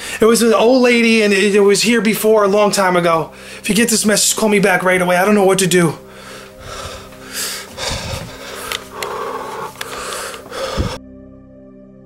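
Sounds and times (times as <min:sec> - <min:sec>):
man breathing hard: 0:03.3 - 0:03.6, 0:06.0 - 0:11.0
rustling and phone clicks: 0:08.1 - 0:10.9.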